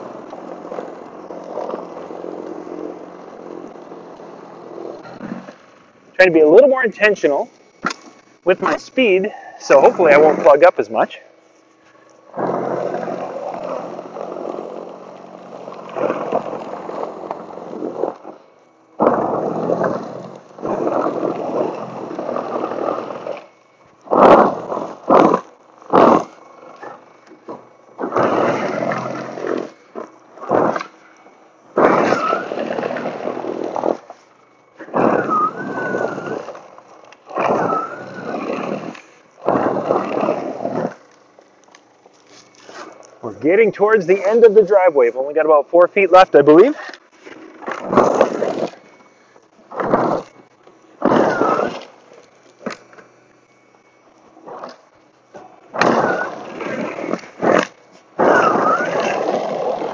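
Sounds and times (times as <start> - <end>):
wavering whine: 0.0 - 59.9
battery snow blower running: 19.0 - 34.2, 34.8 - 44.7.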